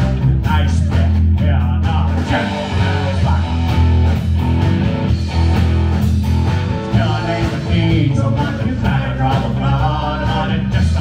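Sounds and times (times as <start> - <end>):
drum kit: 0.0 - 11.0
electric guitar: 0.0 - 11.0
electric upright bass: 0.0 - 11.0.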